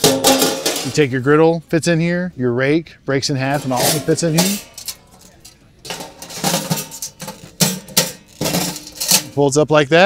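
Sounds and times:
metal grill parts clanking: 0.0 - 1.1, 3.4 - 9.5
metallic knocks and rubs: 3.5 - 9.4.

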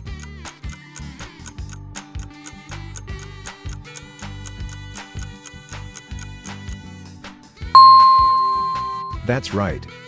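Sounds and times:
bright chime: 7.8 - 9.2.

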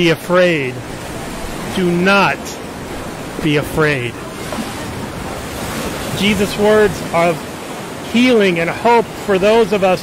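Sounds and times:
ocean surf on rocky shore: 0.0 - 10.0.

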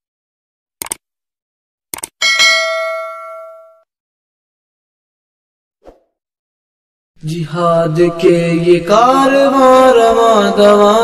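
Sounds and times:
mouse clicks: 0.8 - 1.0
bright bell ding: 2.2 - 3.8.

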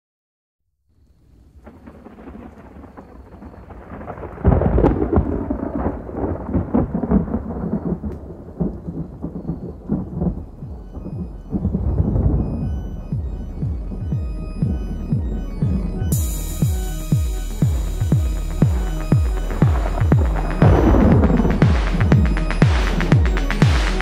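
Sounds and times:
rain: 1.0 - 24.0
rumbling thunder: 1.4 - 24.0
loud thunderclap: 1.5 - 24.0.

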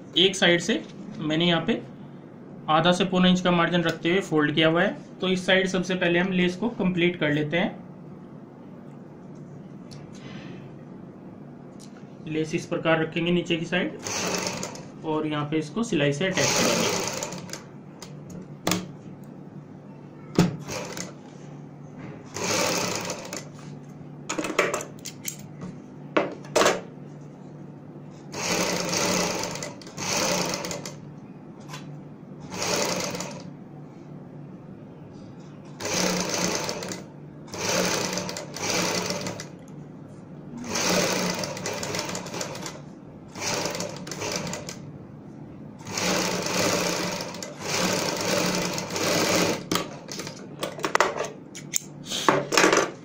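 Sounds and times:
sewing machine stitching: 14.0 - 14.9, 16.3 - 17.7, 20.6 - 21.2, 22.3 - 23.6, 28.4 - 31.0, 32.4 - 33.5, 35.8 - 39.6, 40.6 - 44.8, 45.8 - 50.4.

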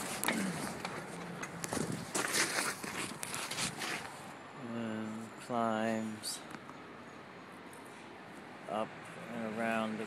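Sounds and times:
footsteps with scuffing: 0.0 - 4.2.

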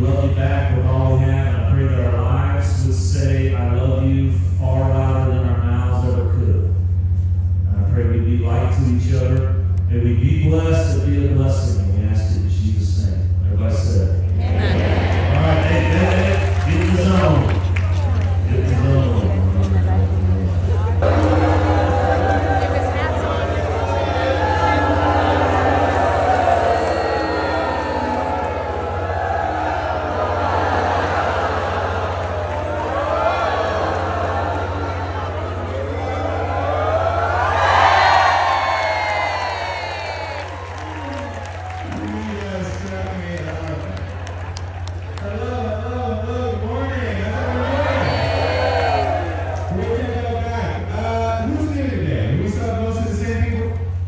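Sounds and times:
man speaking to a crowd: 0.0 - 6.8, 7.7 - 17.8, 18.4 - 21.6, 41.8 - 44.1, 45.2 - 48.2, 49.7 - 53.9
steady low hum: 0.0 - 54.0
man speaking over pa: 7.7 - 17.6, 18.4 - 21.2.

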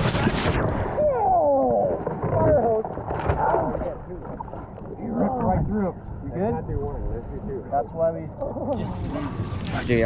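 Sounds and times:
fish thrashing and splashing: 1.6 - 4.9.

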